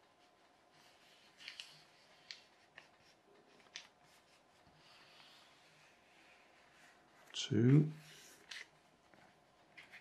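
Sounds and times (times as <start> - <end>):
paper being folded and creased: 0.0 - 7.4.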